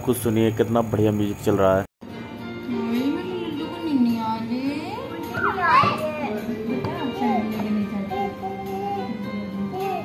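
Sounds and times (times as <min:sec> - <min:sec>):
background music: 0:02.0 - 0:10.0
child calling out: 0:05.4 - 0:06.3.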